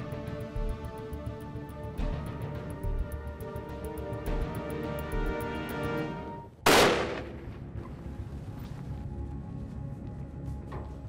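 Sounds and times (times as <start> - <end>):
background music with ticking beat: 0.0 - 6.5
loud rifle shot: 6.6 - 7.6.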